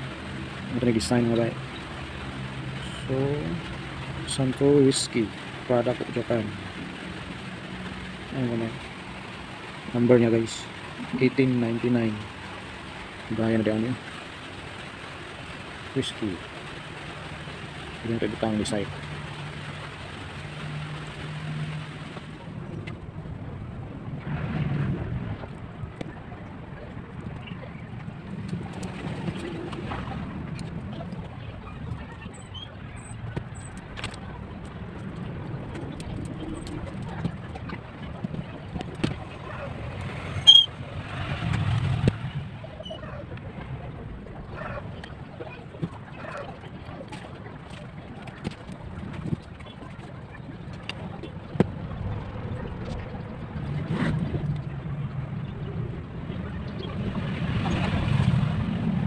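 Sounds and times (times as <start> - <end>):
low background rumble: 0.0 - 59.0
rushing background noise: 0.0 - 59.0.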